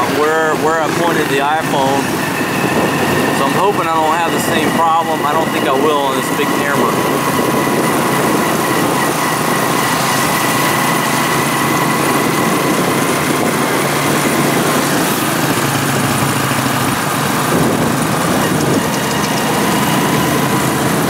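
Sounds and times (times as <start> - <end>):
small motorcycle engine running: 0.0 - 21.0
wind and road noise: 0.0 - 21.0.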